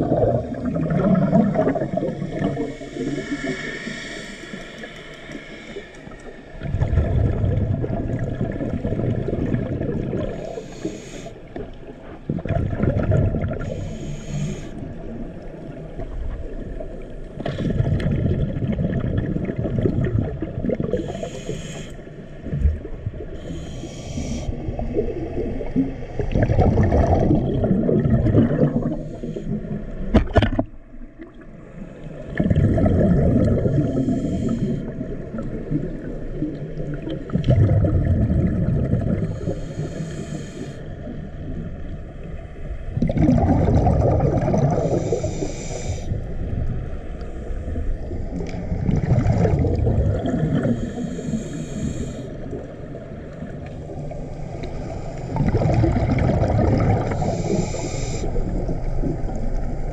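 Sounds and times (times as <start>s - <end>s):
exhaled bubbles rumbling underwater: 0.0s - 59.9s
regulator inhalation hiss: 2.3s - 6.6s, 10.3s - 11.5s, 13.6s - 15.0s, 20.9s - 22.2s, 23.4s - 24.6s, 29.0s - 29.6s, 33.8s - 35.0s, 39.2s - 41.0s, 44.8s - 46.2s, 50.7s - 52.4s, 57.0s - 58.5s.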